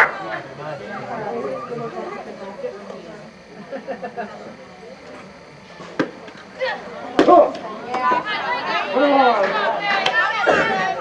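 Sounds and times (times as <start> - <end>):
people calling out: 0.0 - 3.6, 6.5 - 11.0.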